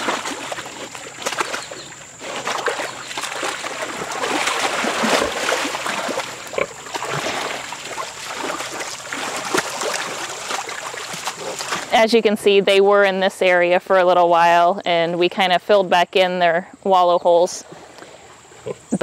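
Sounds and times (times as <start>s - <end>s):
wet mud splashing and squelching: 0.0s - 12.0s.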